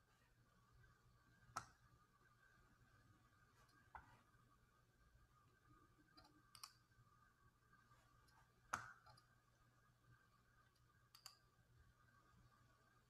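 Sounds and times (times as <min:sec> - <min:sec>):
faint steady hum: 0:00.0 - 0:13.0
faint sharp clicks: 0:10.8 - 0:11.4.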